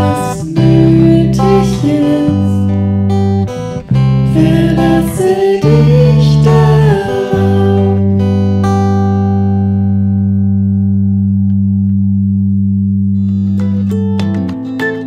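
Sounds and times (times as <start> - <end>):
keyboard and guitar chord ringing: 0.0 - 15.0
plucked-string tune: 0.0 - 15.0.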